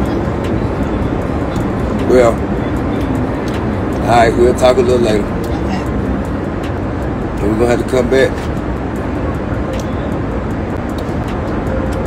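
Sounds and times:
jet cabin engine hum: 0.0s - 12.0s.

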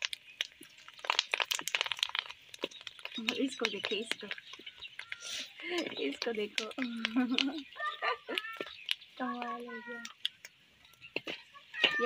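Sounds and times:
papad crackling in frying oil: 0.0s - 12.0s.

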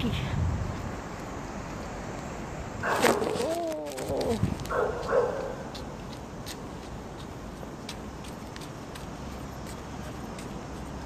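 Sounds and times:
dog barking and howling: 4.7s - 5.7s.

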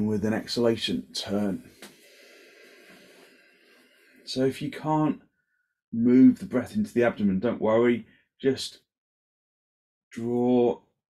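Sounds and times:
person exhaling: 1.7s - 4.3s.

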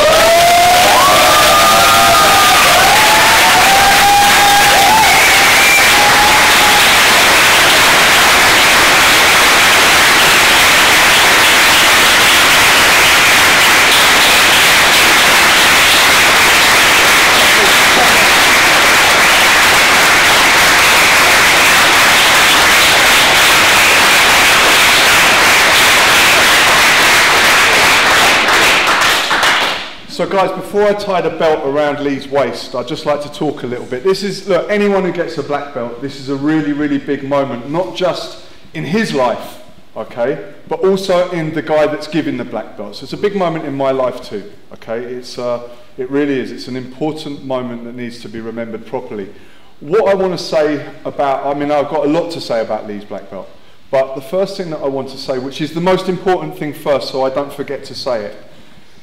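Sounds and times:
whoops and cheers: 0.0s - 7.3s
crowd applauding: 0.0s - 30.0s.

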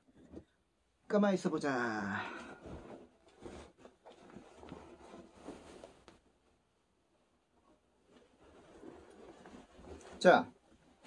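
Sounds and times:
jacket fabric rustling: 1.8s - 11.0s.

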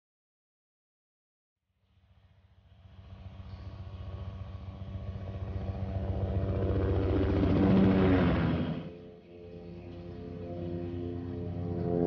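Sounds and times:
pulsing engine drone: 1.8s - 12.0s.

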